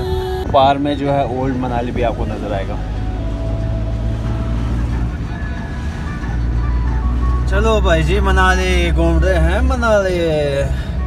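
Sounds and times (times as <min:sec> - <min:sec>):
car engine and tyres rumbling: 0:00.0 - 0:11.0
faint music with held notes: 0:00.0 - 0:11.0.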